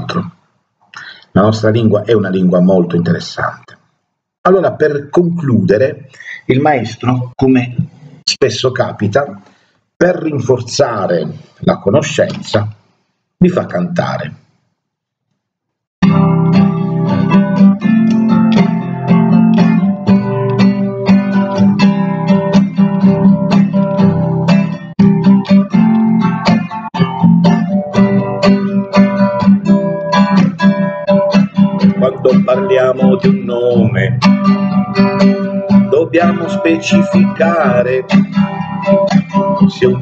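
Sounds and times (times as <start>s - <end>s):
acoustic guitar strumming: 16.0s - 40.0s.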